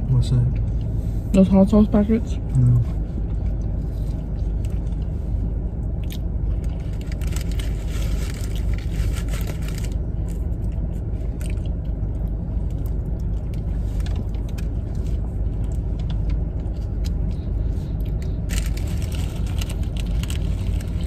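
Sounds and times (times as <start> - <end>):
idling car rumble: 0.0 - 21.0
wrapper rustling and crunching: 6.6 - 10.4, 18.5 - 21.0.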